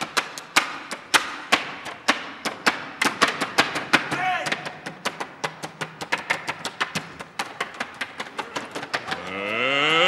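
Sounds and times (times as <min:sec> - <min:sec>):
fast percussion strokes: 0:00.0 - 0:10.0.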